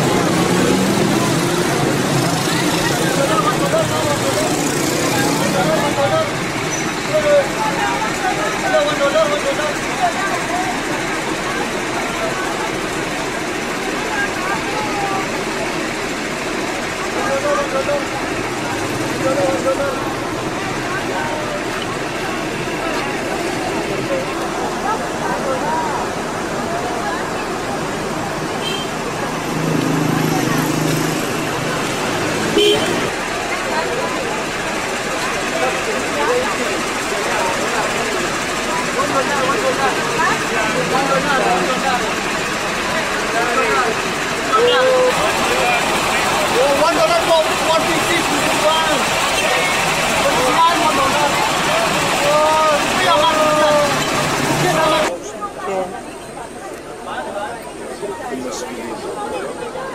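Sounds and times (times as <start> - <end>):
indistinct voices talking: 0.0 - 59.9
vehicle traffic: 0.0 - 59.9.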